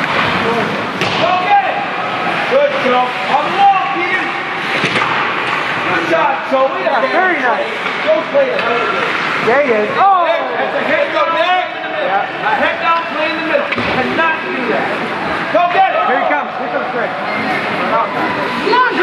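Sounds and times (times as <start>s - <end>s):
voices calling and shouting: 5.2s - 19.0s.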